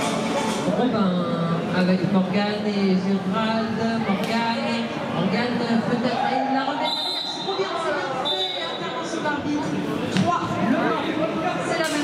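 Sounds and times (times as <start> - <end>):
voices in echoing arena: 0.0 - 12.0.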